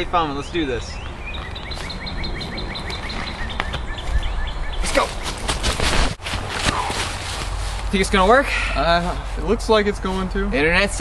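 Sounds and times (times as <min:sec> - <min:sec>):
small bird chirping: 0:00.3 - 0:05.5
rustling crackling noise: 0:04.8 - 0:08.3.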